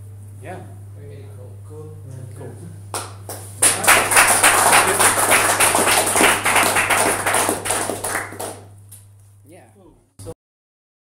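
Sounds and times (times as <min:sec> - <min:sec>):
audience applauding: 0:03.0 - 0:08.7.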